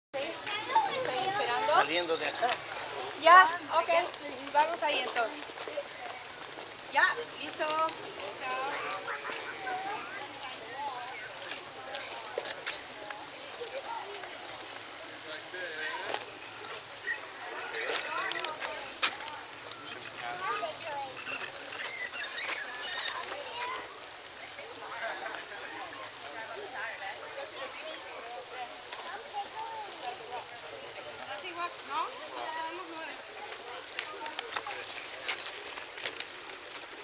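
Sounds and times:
people and children chattering: 0.1 - 37.0
people talking in background: 0.2 - 37.0.

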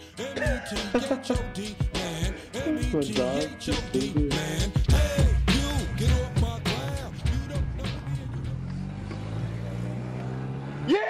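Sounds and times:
car engine running: 4.9 - 10.8.

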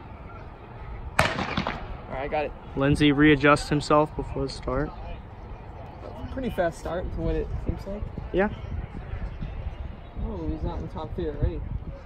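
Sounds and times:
starting pistol shot: 1.2 - 2.0.

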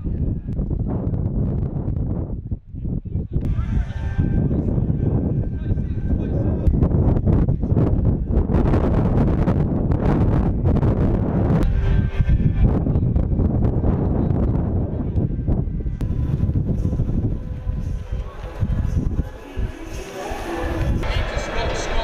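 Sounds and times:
wind blowing across microphone: 0.0 - 22.0.

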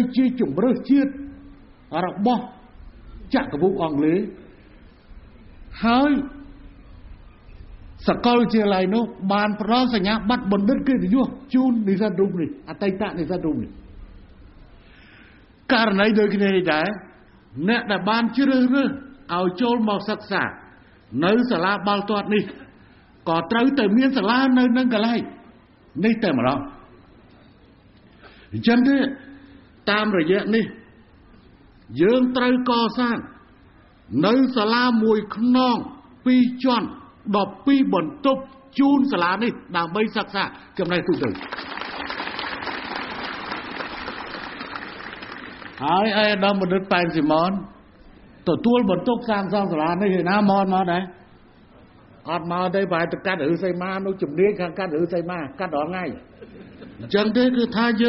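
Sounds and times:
man speaking into microphones: 0.0 - 4.6, 5.7 - 6.6, 8.0 - 13.9, 15.6 - 26.9, 28.4 - 31.0, 31.9 - 41.4, 45.8 - 51.4, 52.2 - 56.3, 57.0 - 58.0
crowd applauding: 41.2 - 45.9.

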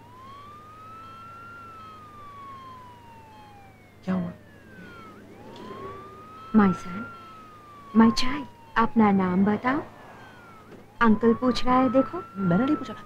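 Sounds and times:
ambulance siren wailing: 0.0 - 13.0.

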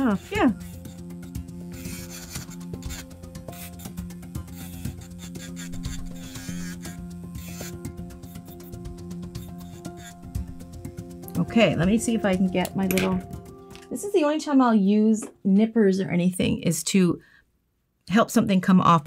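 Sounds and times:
electric nail file grinding: 0.0 - 12.6
background music: 0.0 - 16.0.

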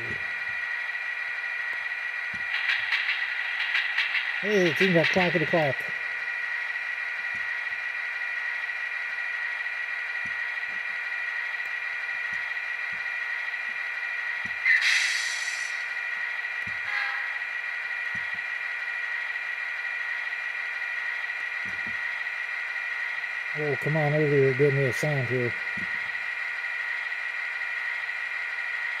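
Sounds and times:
model locomotive diesel idle: 0.0 - 29.0
air hiss: 14.7 - 15.9.

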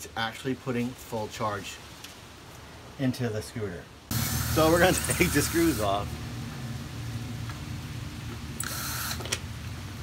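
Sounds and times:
cordless drill running: 4.1 - 5.9, 8.6 - 9.4.

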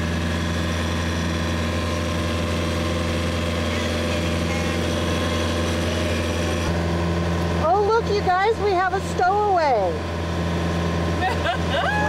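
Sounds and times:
boat engine humming steadily: 0.0 - 12.0.

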